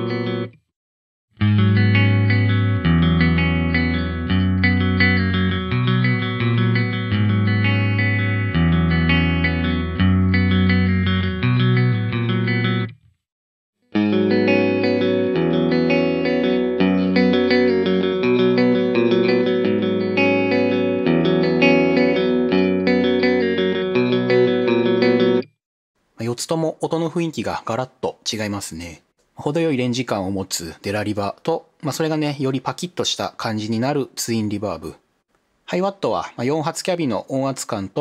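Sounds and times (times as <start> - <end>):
clean electric guitar: 0.0 - 0.6, 1.4 - 13.2, 13.9 - 25.6.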